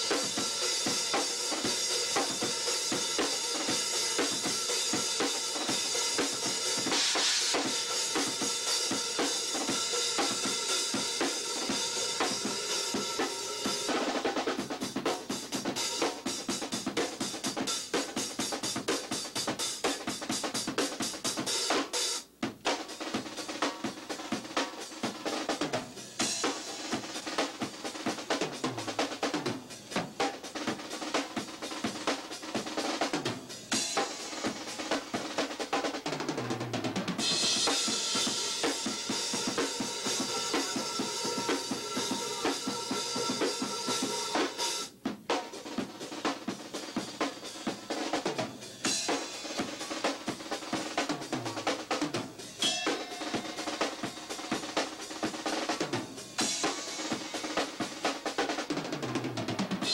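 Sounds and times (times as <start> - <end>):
rock drum kit played hard: 0.0 - 59.9
cymbals crashing: 37.2 - 44.9, 52.6 - 54.6.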